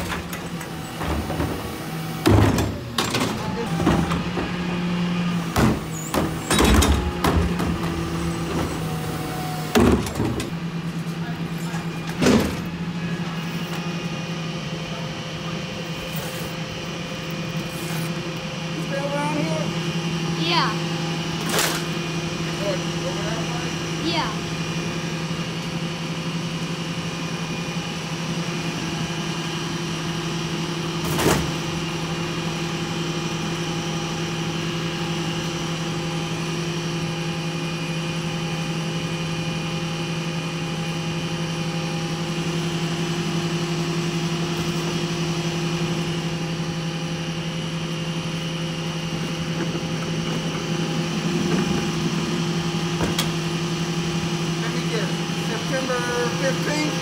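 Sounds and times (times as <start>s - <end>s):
garbage truck engine humming: 0.0s - 57.0s.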